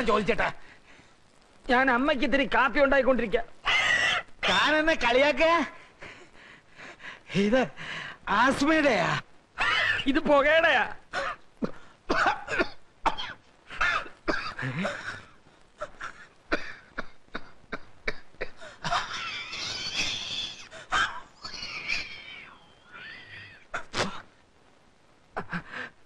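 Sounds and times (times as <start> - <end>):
men coughing: 11.2 - 20.3.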